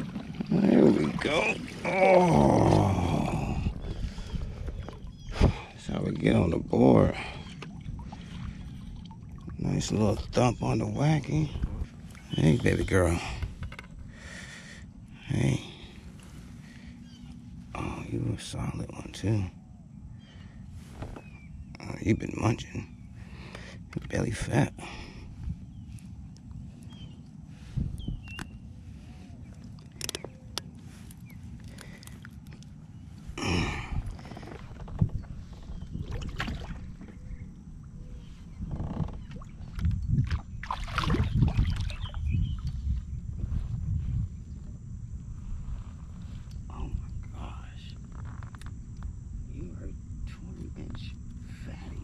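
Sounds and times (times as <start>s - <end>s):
water splashing: 0.0s - 2.9s, 36.0s - 37.1s, 39.2s - 42.1s
wind rumble on microphone: 0.0s - 14.2s, 25.1s - 31.6s, 32.5s - 52.0s.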